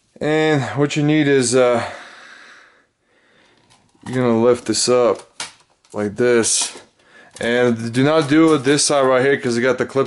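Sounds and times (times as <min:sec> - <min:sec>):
person breathing: 0:01.7 - 0:03.8, 0:06.9 - 0:07.4.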